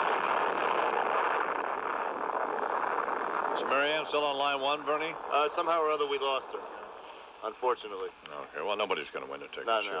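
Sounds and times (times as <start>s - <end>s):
telephone line static hiss: 0.0s - 10.0s.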